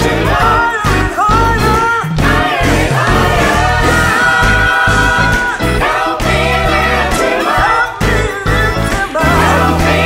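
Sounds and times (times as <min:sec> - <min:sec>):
drums: 0:00.0 - 0:10.0
gospel choir singing: 0:00.0 - 0:10.0
piano: 0:00.0 - 0:10.0.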